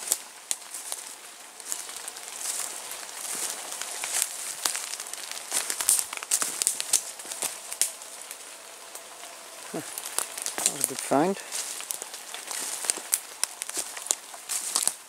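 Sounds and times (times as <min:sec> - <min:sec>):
rustling vegetation: 0:00.0 - 0:15.0
twigs snapping underfoot: 0:00.0 - 0:15.0.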